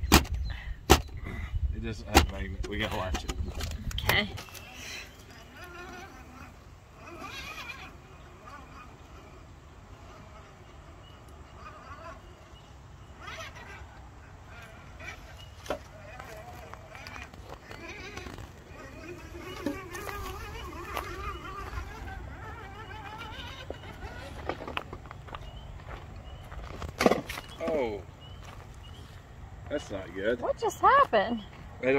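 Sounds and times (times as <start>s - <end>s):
indistinct voices talking: 27.4s - 31.9s.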